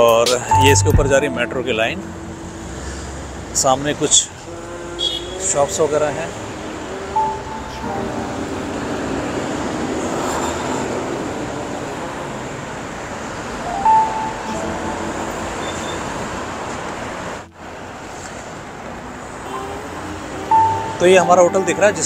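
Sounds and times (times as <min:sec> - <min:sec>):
city street traffic: 0:00.0 - 0:22.0
short high beep: 0:00.4 - 0:02.1, 0:13.8 - 0:16.3.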